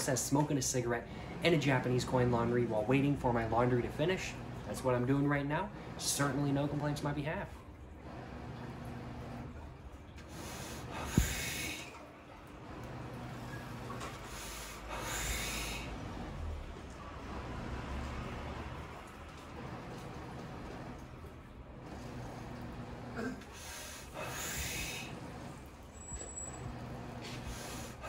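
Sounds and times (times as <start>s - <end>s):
tumble dryers humming: 0.0s - 28.0s
breathy exhale of smoke: 10.3s - 11.9s, 14.2s - 16.0s
smoker drawing breath: 10.3s - 12.0s, 13.9s - 16.5s, 23.1s - 25.6s, 26.8s - 28.0s.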